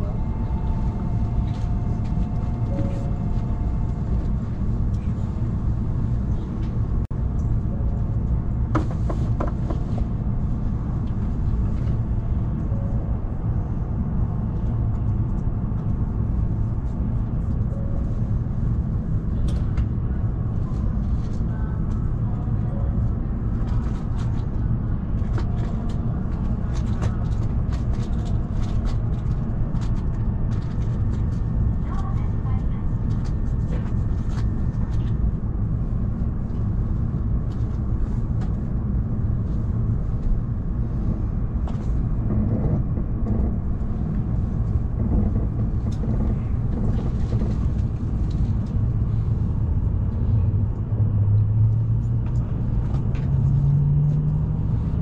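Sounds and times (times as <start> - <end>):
train interior low rumble: 0.0 - 55.0.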